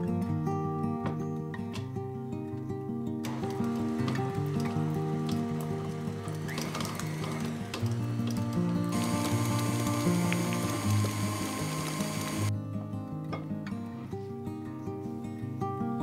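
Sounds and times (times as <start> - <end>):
acoustic guitar music: 0.0 - 16.0
stand mixer running: 3.3 - 12.5.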